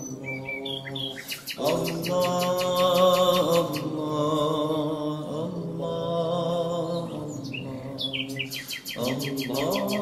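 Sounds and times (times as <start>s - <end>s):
bird chirping and trilling: 0.0s - 4.0s, 7.0s - 10.0s
person chanting: 0.0s - 10.0s.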